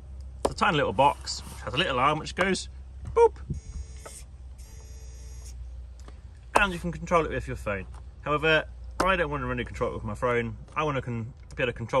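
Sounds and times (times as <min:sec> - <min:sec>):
small motor whirring: 0:03.6 - 0:05.6.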